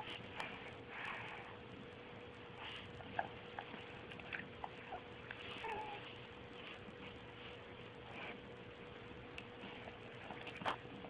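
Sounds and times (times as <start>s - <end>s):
dog snuffling and licking: 2.6s - 11.0s
dog whimper: 4.7s - 6.1s.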